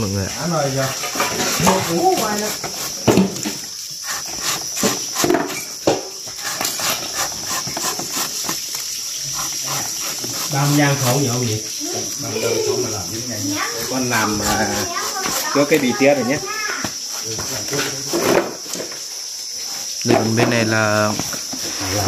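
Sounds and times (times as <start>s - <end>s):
crickets chirping: 0.0s - 22.0s.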